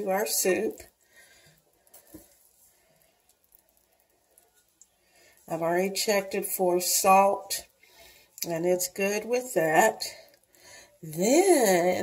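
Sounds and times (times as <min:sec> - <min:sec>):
spatula stirring thick soup: 0:00.0 - 0:11.8.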